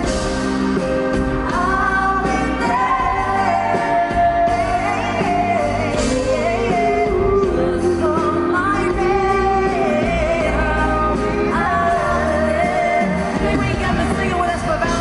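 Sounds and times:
band accompaniment: 0.0 - 15.0
woman and man singing duet: 1.2 - 15.0.

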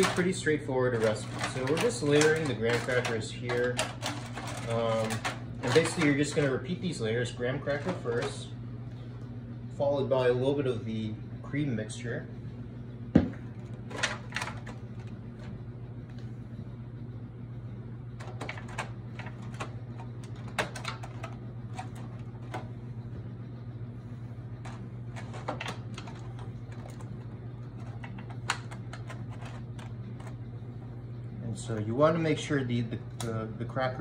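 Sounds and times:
aluminium foil pan crinkling: 0.0 - 6.6
steady low hum: 0.0 - 34.0.

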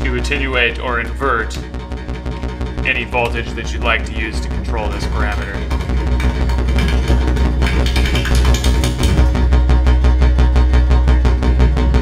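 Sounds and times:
deep bass synth tone: 0.0 - 12.0
fast clicking pulse: 2.2 - 9.6.

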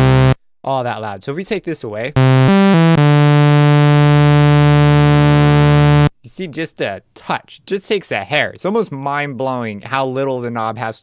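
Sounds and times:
synthesizer sawtooth bass note: 0.0 - 0.4, 2.2 - 6.1.

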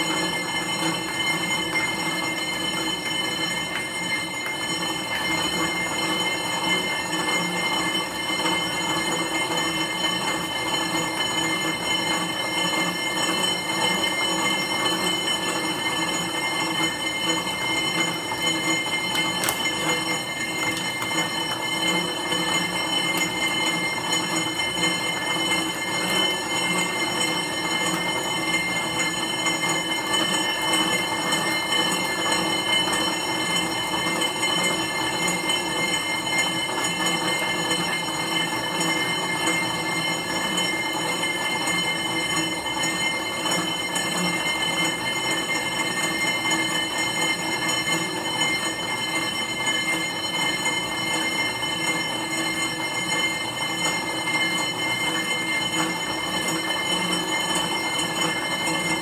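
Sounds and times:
exercise bike whirring: 0.0 - 59.0.

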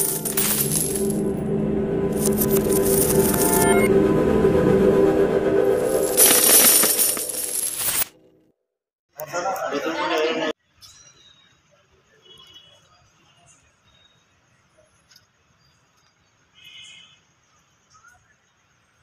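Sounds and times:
coins clinking and jingling: 0.0 - 1.2, 2.2 - 3.9, 5.8 - 8.1
held musical tones: 0.0 - 7.8.

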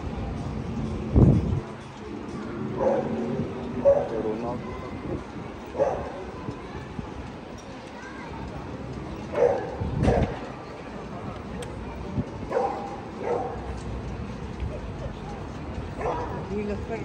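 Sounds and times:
chatter of passers-by: 0.0 - 17.0
dog barking: 2.8 - 3.2, 3.8 - 4.2, 5.8 - 6.1, 9.3 - 10.4, 12.5 - 13.6, 16.0 - 16.4.

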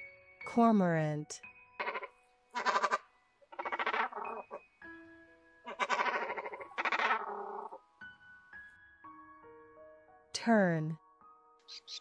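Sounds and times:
soft background music: 0.0 - 12.0
cormorant calling: 1.8 - 4.7, 5.6 - 7.9.

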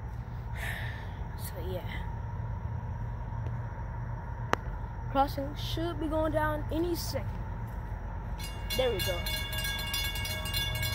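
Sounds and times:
low engine rumble: 0.0 - 10.9.

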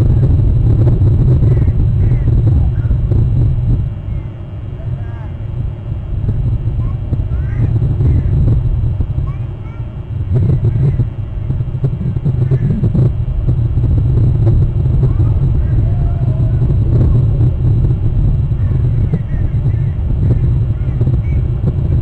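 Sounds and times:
low wind rumble: 0.0 - 22.0
birds chirping: 18.5 - 21.8.

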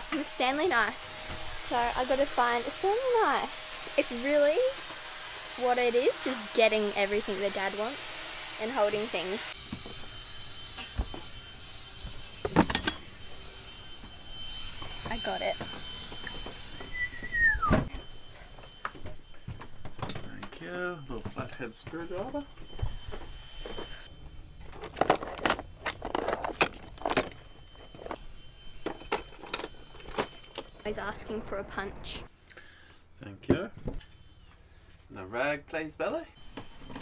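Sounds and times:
hard objects clattering: 24.5 - 28.2.

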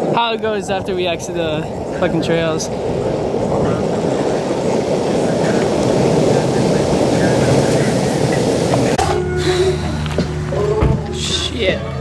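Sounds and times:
skateboard wheels rolling on asphalt: 0.0 - 11.2.

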